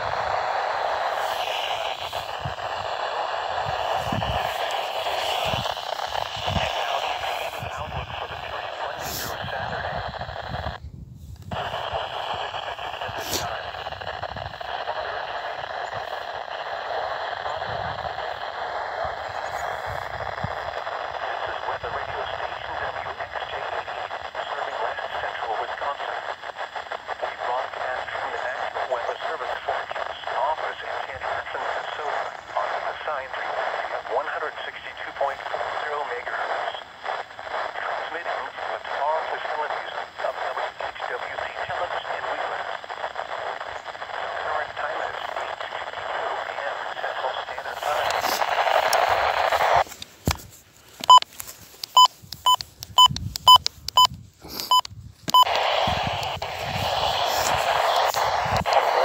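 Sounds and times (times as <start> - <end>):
faint announcer voice on radio: 0.0 - 10.8, 11.5 - 49.9, 54.8 - 59.0
radio static hiss: 0.0 - 59.0.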